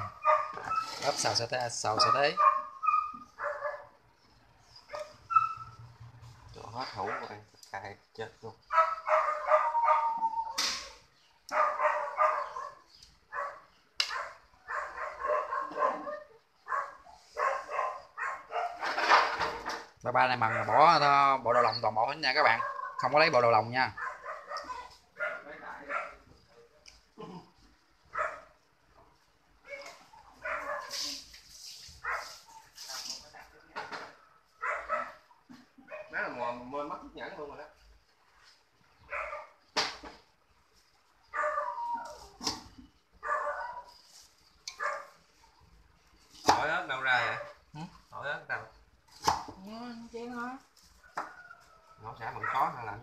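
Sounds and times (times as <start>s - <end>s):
dog barking: 0.0s - 1.0s, 1.9s - 4.0s, 6.9s - 7.4s, 8.7s - 19.1s, 20.3s - 23.1s, 23.9s - 26.3s, 28.1s - 28.6s, 29.6s - 31.2s, 32.0s - 32.7s, 34.6s - 36.3s, 39.1s - 39.6s, 41.3s - 42.1s, 43.2s - 44.0s, 44.7s - 45.2s, 47.2s - 47.6s, 52.3s - 53.0s.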